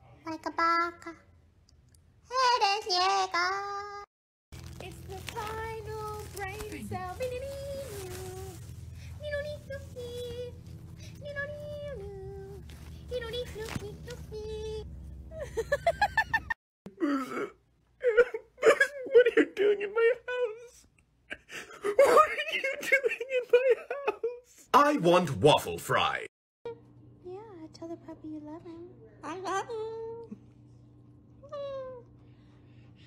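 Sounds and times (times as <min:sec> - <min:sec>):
steady low hum: 0:04.6 - 0:17.5.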